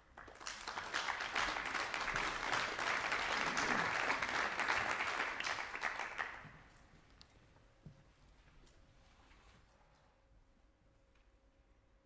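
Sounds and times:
audience applause: 0:00.2 - 0:06.6.

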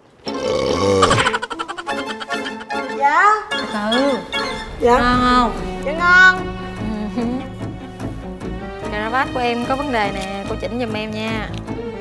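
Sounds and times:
person burping: 0:00.3 - 0:02.6
light plucked comedic music: 0:01.0 - 0:12.0.

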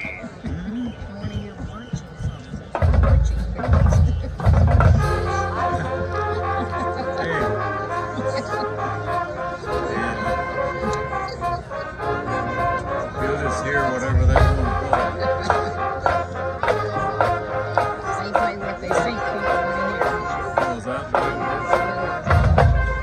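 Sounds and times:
low bass line: 0:02.8 - 0:20.0
brass playing held chords: 0:03.1 - 0:23.0.

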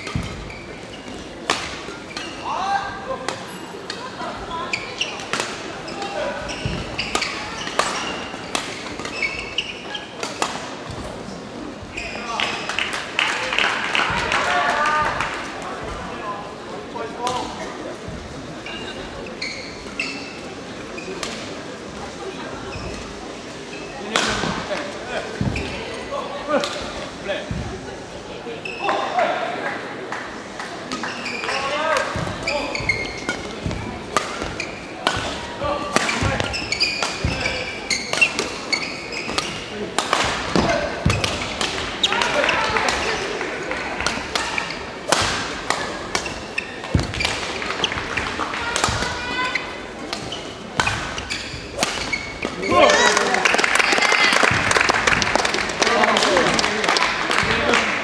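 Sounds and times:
court shoes squeaking: 0:00.0 - 0:16.1, 0:17.2 - 0:29.3, 0:30.8 - 0:57.9
racket striking shuttlecock: 0:32.0 - 0:43.2, 0:44.0 - 0:49.2, 0:50.1 - 0:52.7.

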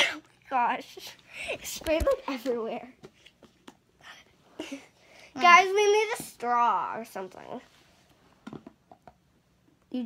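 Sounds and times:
girl speaking: 0:00.4 - 0:03.0, 0:04.7 - 0:07.7.

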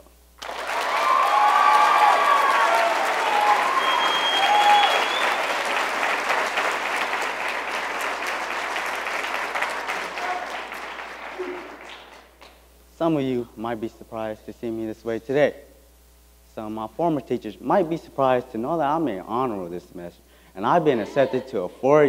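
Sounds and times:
audience clapping and cheering: 0:00.4 - 0:12.6
whoops and shouts: 0:00.8 - 0:05.3
high whistle: 0:03.3 - 0:05.4.

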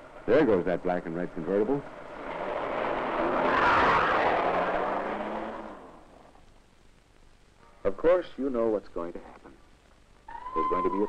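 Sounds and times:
car driving past at speed: 0:02.0 - 0:06.1.

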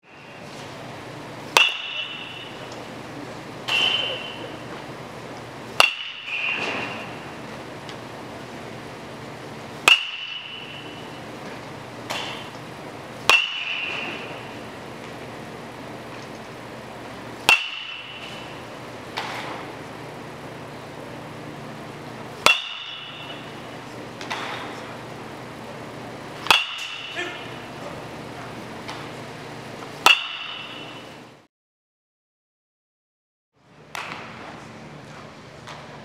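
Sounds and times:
metal bat hitting baseball: 0:01.5 - 0:02.7, 0:03.7 - 0:04.5, 0:05.8 - 0:07.2, 0:09.8 - 0:11.2, 0:12.1 - 0:12.6, 0:13.2 - 0:14.7, 0:17.4 - 0:18.6, 0:19.2 - 0:19.7, 0:22.4 - 0:24.8, 0:26.4 - 0:27.4, 0:30.0 - 0:31.0.

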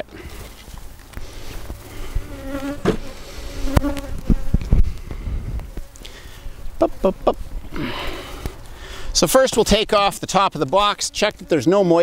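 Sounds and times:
honeybees buzzing: 0:00.9 - 0:12.0.

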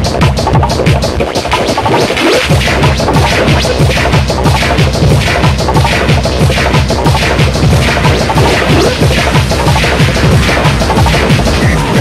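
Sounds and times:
kick drum: 0:00.0 - 0:12.0
techno dance music: 0:00.0 - 0:12.0.

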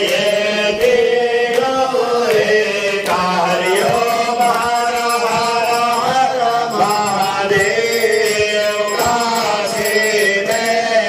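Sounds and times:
devotional hymn chanting: 0:00.0 - 0:11.0.

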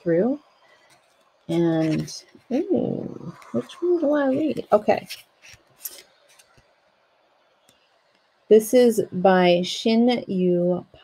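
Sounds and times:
book pages rustling and turning: 0:00.8 - 0:02.5, 0:04.3 - 0:06.7.

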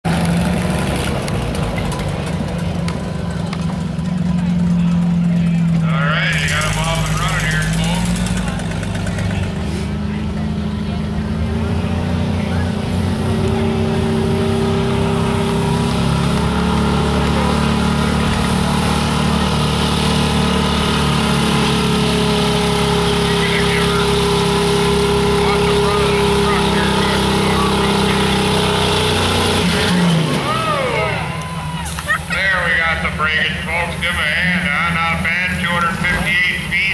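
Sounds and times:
truck engine at high revs: 0:00.0 - 0:36.9.

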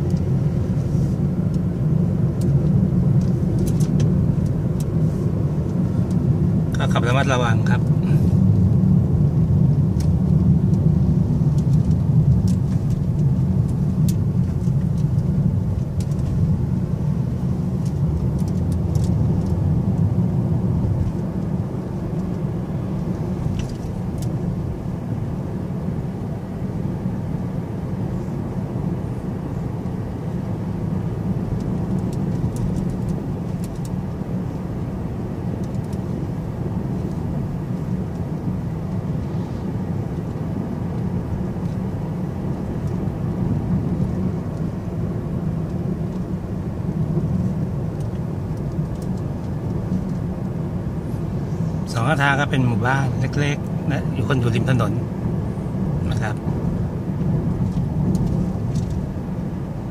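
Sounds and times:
car interior road rumble: 0:00.0 - 0:59.9.

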